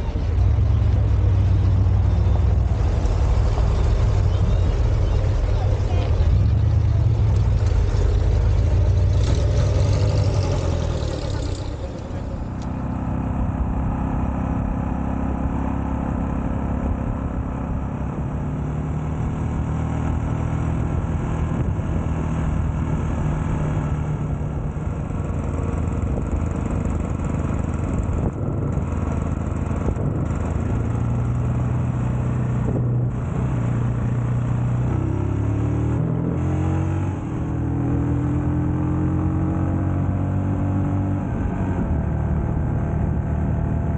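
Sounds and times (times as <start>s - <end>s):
cars driving past: 0.0s - 15.5s
motorcycle engine running: 0.0s - 18.4s, 20.8s - 35.6s.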